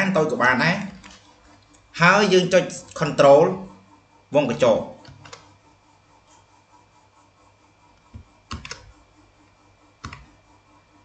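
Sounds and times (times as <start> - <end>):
faint steady hum: 0.0 - 11.0
computer keyboard keystrokes: 5.0 - 5.5, 8.5 - 8.9, 10.0 - 10.3.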